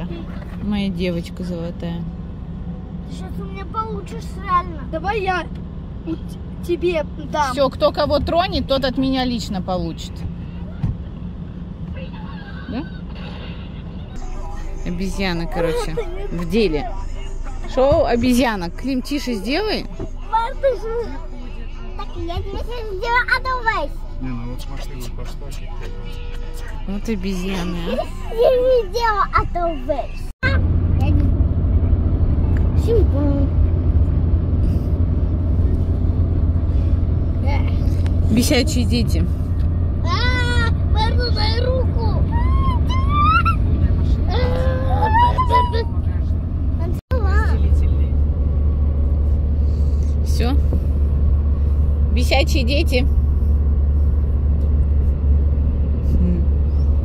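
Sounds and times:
car road and engine rumble: 0:00.0 - 0:57.0
music playing in car: 0:14.2 - 0:23.6
children's voices: 0:20.2 - 0:24.1, 0:27.8 - 0:30.6
child squealing: 0:42.2 - 0:43.7, 0:44.3 - 0:46.0.

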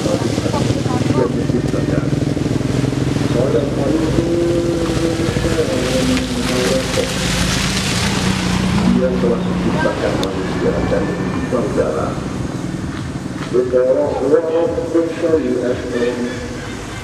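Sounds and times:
car driving on muddy road: 0:00.0 - 0:17.0.

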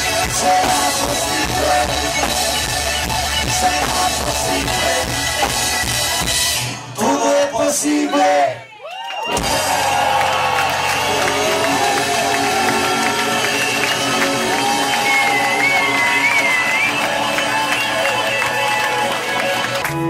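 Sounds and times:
crowd cheering and applauding: 0:00.0 - 0:06.6, 0:08.0 - 0:20.0.

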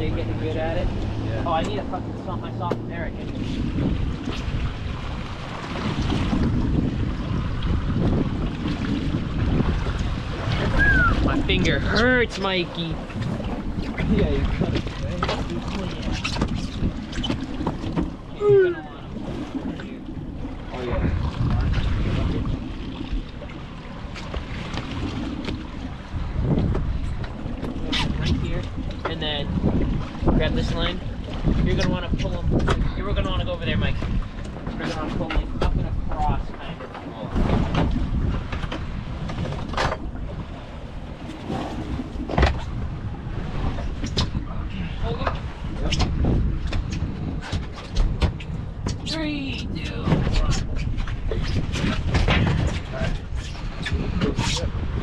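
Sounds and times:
wind buffeting microphone: 0:00.0 - 0:55.0
knocks and thuds on boat deck: 0:00.3 - 0:04.4, 0:13.1 - 0:18.6, 0:24.2 - 0:33.0, 0:37.3 - 0:40.4, 0:41.4 - 0:49.2, 0:49.8 - 0:53.3.

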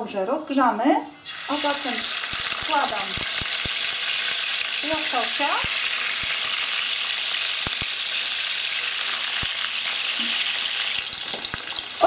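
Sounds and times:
fish sizzling in frying pan: 0:01.2 - 0:12.0
oil popping: 0:09.0 - 0:12.0.

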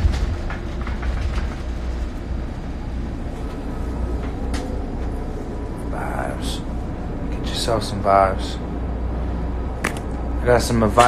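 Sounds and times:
bus engine rumble: 0:00.0 - 0:11.0.

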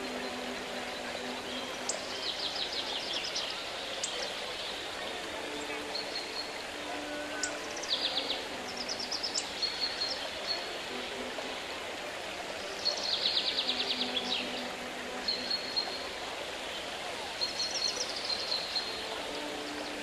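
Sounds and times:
songbirds trilling: 0:00.0 - 0:20.0.

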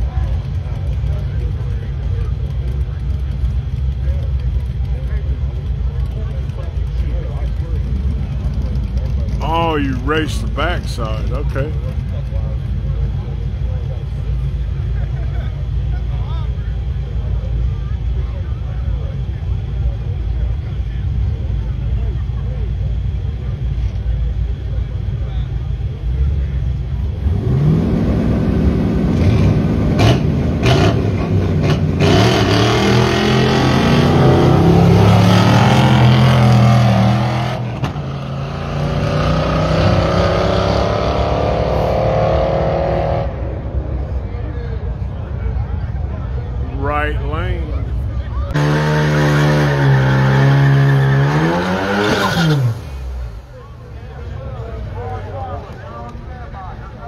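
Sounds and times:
drag car engines revving: 0:00.0 - 0:57.0.

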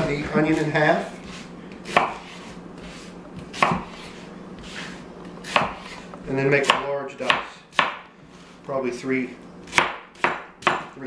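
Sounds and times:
faint steady hum: 0:00.0 - 0:11.0
knife chopping onto cutting board: 0:01.2 - 0:04.2, 0:05.4 - 0:06.0, 0:06.6 - 0:08.1, 0:09.7 - 0:11.0.

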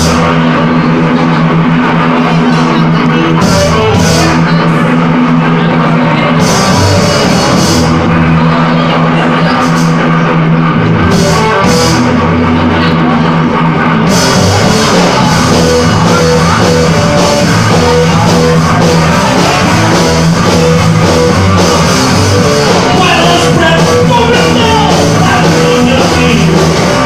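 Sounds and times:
bass guitar: 0:00.0 - 0:27.0
distorted electric guitars: 0:00.0 - 0:27.0
metal band playing live: 0:00.0 - 0:27.0.

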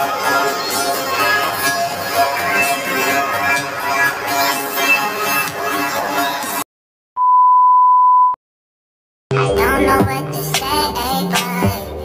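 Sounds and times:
high electronic beep: 0:07.2 - 0:08.4.

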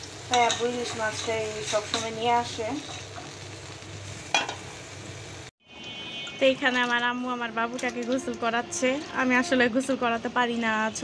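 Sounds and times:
curry simmering with sizzling hiss: 0:00.0 - 0:05.5.

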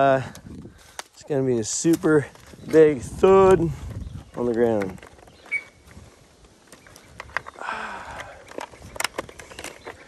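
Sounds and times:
chainsaw being handled: 0:00.2 - 0:10.0.

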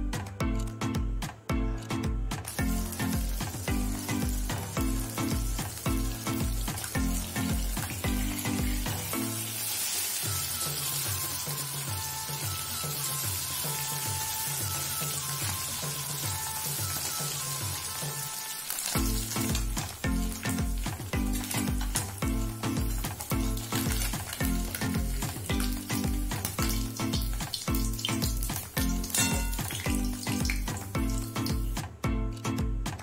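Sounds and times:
background music with beat: 0:00.0 - 0:33.0
fish frying in hot oil: 0:02.5 - 0:31.9.

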